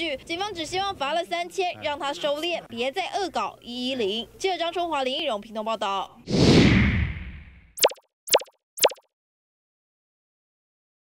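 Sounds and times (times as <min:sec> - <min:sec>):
short plop sounds: 0:07.8 - 0:09.0.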